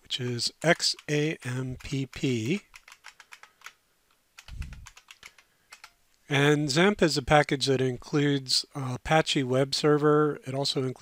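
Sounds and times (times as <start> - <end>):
keyboard keys clicking: 1.8 - 3.8, 4.4 - 6.0.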